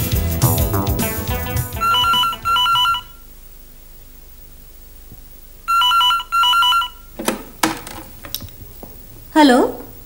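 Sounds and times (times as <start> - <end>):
electronic telephone ringing: 1.8 - 3.2, 5.7 - 7.2.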